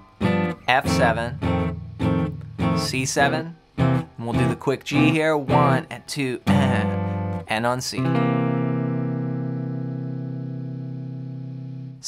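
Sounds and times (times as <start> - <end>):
electric guitar chord ringing: 0.0 - 5.8, 6.5 - 12.0.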